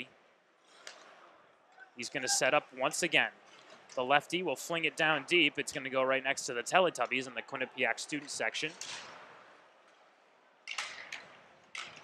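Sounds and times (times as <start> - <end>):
low arena hiss: 0.0 - 12.0.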